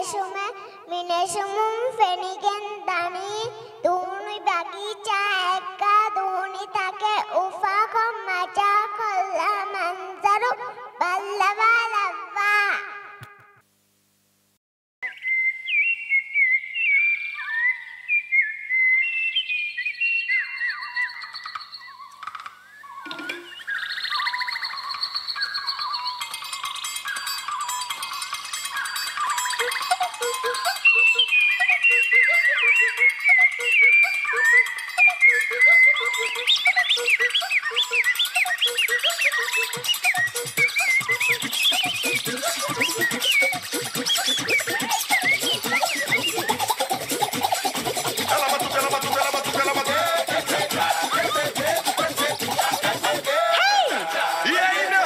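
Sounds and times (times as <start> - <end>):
bird chirps and whistles: 15.0 - 53.9
electronic music with steady beat: 26.1 - 55.0.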